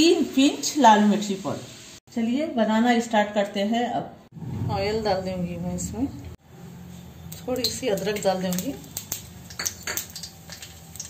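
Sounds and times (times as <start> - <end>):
faint oil crackle: 6.2 - 11.0
ginger slices dropping into oil: 7.3 - 11.0.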